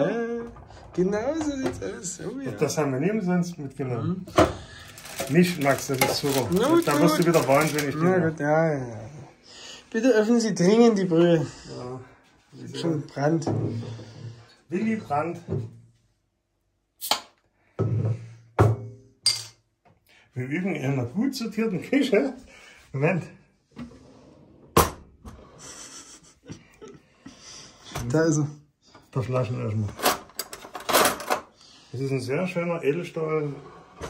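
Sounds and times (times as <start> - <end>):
glass bottles knocking and clinking: 5.0 - 8.0, 18.6 - 19.6
metal cutlery clattering in drawer: 30.0 - 31.4.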